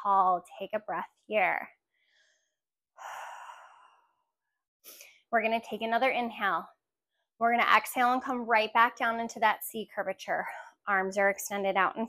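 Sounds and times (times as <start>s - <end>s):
short breath: 2.0s - 4.3s.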